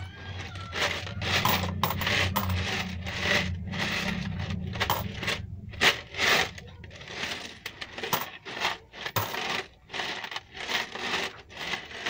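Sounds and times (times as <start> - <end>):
coins rattling in plastic coin bank: 0.2 - 12.0
coins spilling onto cardboard: 0.8 - 4.0, 4.7 - 12.0.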